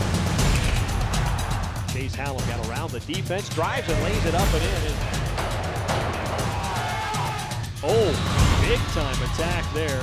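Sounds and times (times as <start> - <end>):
background music with steady beat: 0.0 - 10.0
sports commentator talking: 1.9 - 5.0, 7.8 - 10.0.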